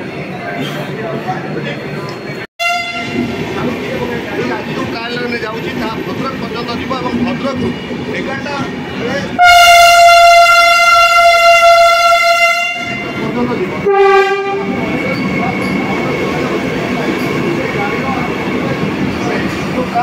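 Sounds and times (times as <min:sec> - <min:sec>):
train rolling rumble: 0:00.0 - 0:20.0
train horn blasts: 0:02.6 - 0:03.3, 0:09.4 - 0:13.2, 0:13.8 - 0:14.8.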